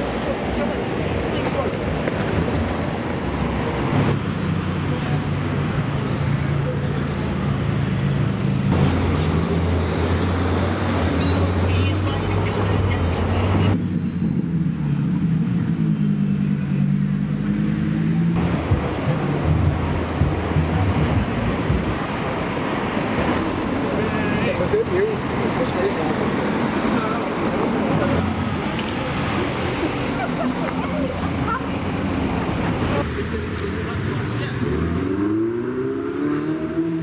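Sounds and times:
car engines passing: 0.0 - 37.0.

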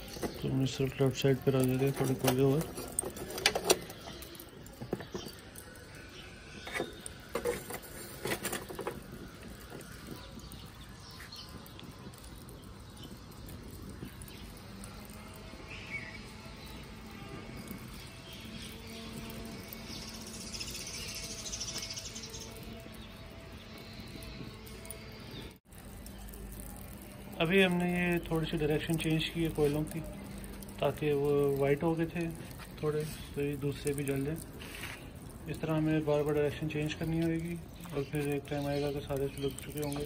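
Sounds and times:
charcoal burning: 0.0 - 40.0
charcoal crackling and popping: 0.0 - 40.0.

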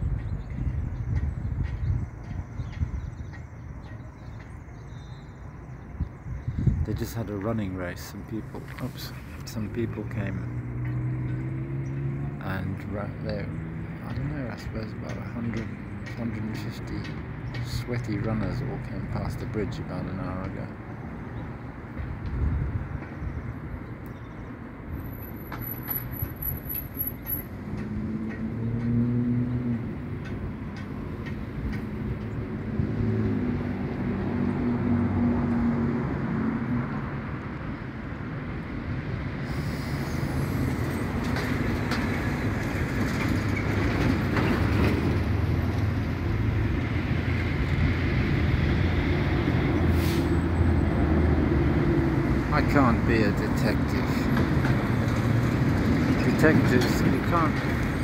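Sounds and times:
heavy vehicle rumbling past: 7.2 - 17.5, 24.9 - 58.0.

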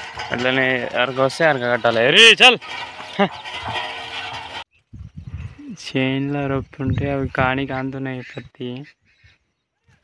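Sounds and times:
hooves clopping: 0.0 - 4.6
wooden cart rattling: 0.0 - 4.6.

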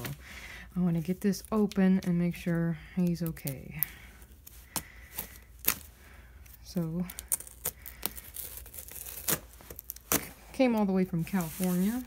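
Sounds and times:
blade slitting packing tape: 7.1 - 10.3.

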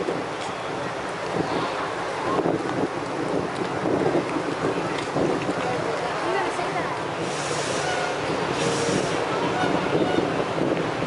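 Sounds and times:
crowd chatter: 0.0 - 11.0
wind on microphone: 0.0 - 11.0.

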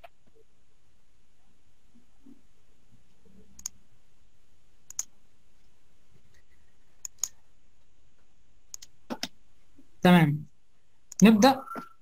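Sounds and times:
computer mouse clicks: 3.6 - 3.8, 4.9 - 5.1, 7.0 - 7.4, 8.7 - 9.4.

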